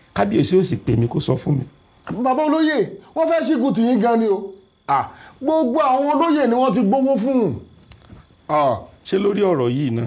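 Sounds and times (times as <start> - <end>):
crickets chirring: 0.0 - 10.0
man speaking: 0.2 - 7.7, 8.5 - 10.0.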